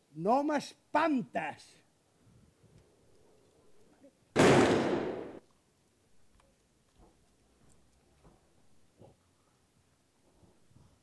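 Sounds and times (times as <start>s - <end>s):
gunshot bang: 4.4s - 5.4s.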